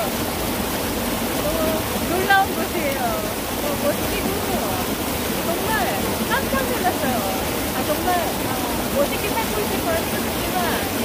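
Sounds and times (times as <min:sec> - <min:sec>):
stream flowing over rocks: 0:00.0 - 0:11.0
people's voices: 0:01.4 - 0:11.0.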